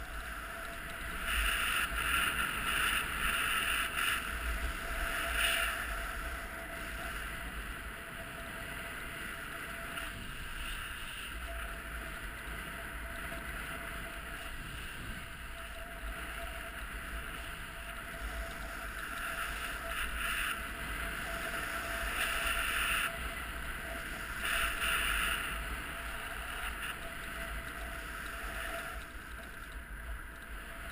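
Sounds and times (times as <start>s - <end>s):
wind rushing over microphone: 0.0s - 30.9s.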